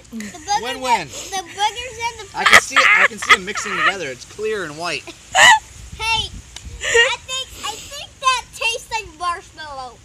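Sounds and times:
high-pitched laughter: 0:01.2 - 0:04.1, 0:05.3 - 0:05.6, 0:06.8 - 0:07.9.

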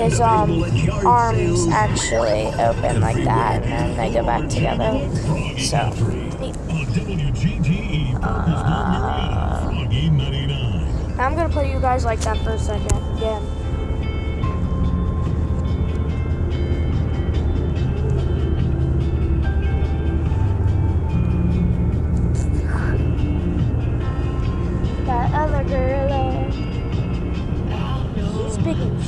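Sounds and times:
person speaking: 0:00.0 - 0:07.1, 0:08.1 - 0:13.5
car rumble: 0:00.0 - 0:29.0
music on car radio: 0:00.0 - 0:29.0.

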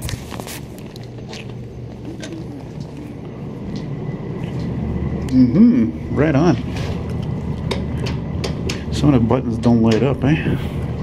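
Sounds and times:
elevator hum and rumble: 0:00.0 - 0:11.0.

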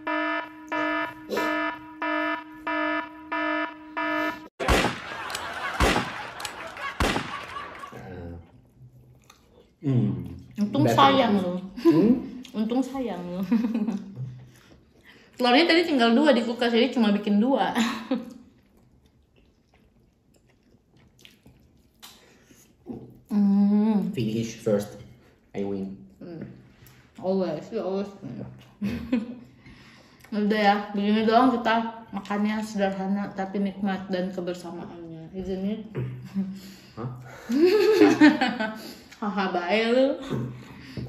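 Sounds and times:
alarm buzzer beeping: 0:00.0 - 0:04.7
revolver gunshots: 0:04.6 - 0:07.7
chewing: 0:08.5 - 0:10.7, 0:13.9 - 0:15.4, 0:18.2 - 0:23.3.

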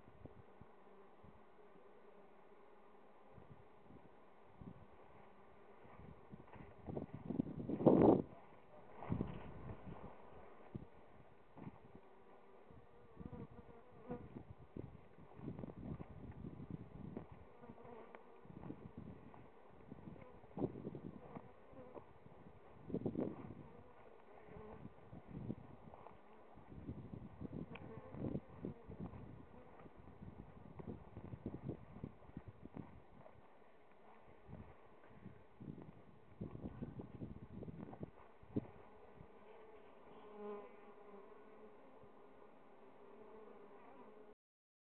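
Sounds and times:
honeybees buzzing: 0:08.9 - 0:33.2.

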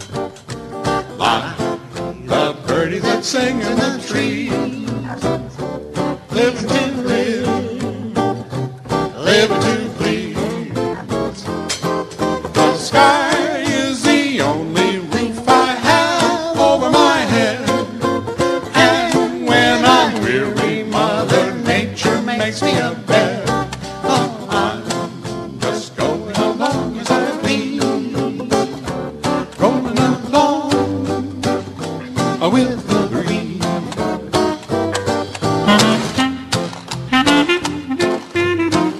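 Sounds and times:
string bass: 0:00.0 - 0:38.9
strummed guitar: 0:00.0 - 0:38.9
washboard rhythm: 0:00.0 - 0:38.9
men singing: 0:01.2 - 0:05.4, 0:06.2 - 0:11.6, 0:12.5 - 0:34.2.

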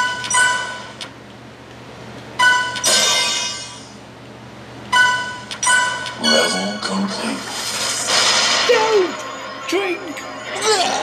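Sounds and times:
bell-like musical notes: 0:09.1 - 0:11.0.

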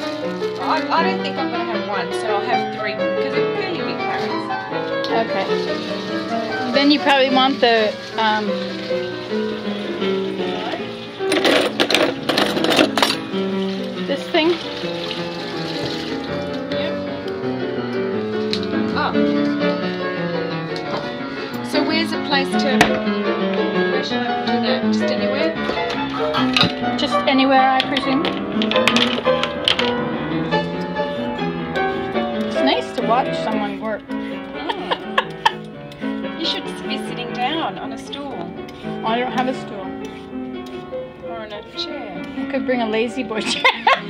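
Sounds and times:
solo piano music: 0:00.0 - 0:44.0.

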